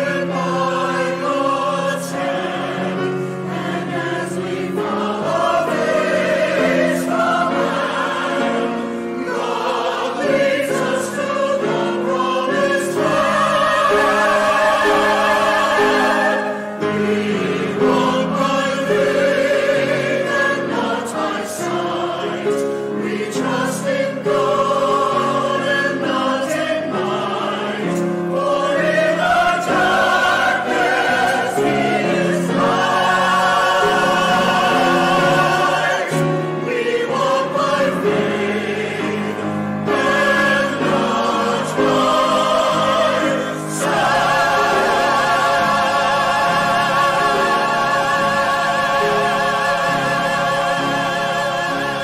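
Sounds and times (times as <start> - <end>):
grand piano: 0.0 - 52.0
mixed choir singing: 0.0 - 52.0.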